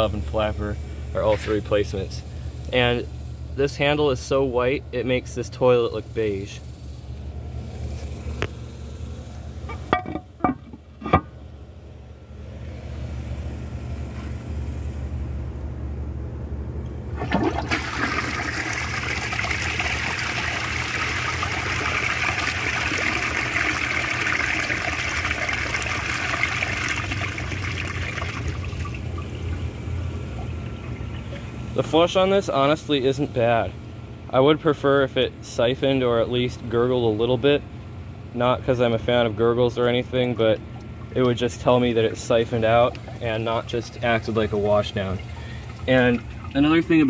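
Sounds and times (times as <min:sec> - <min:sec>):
toilet flushing water rushing: 0:17.1 - 0:31.6, 0:42.7 - 0:47.0.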